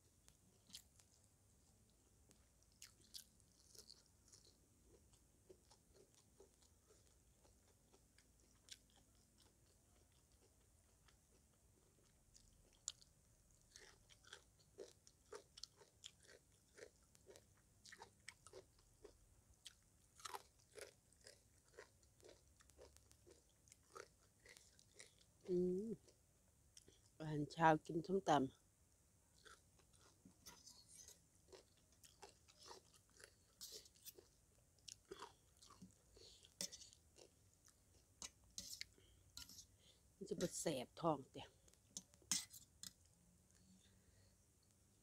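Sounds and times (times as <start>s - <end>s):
chewing and crunching: 0.5s - 1.3s, 2.3s - 26.2s, 29.4s - 39.7s.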